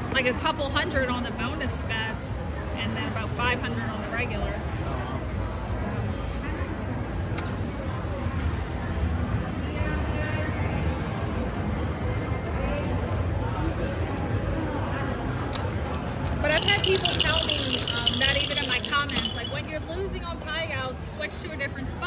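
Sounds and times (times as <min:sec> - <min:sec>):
rapid high clicking and rattling: 0:16.2 - 0:19.8.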